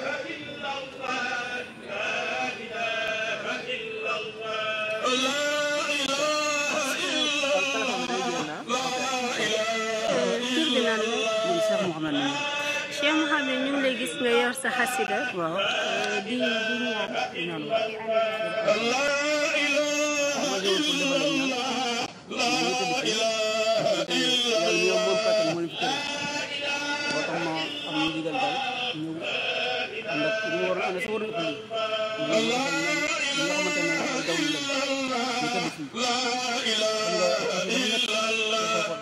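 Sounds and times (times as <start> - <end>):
man chanting: 0.0 - 39.0.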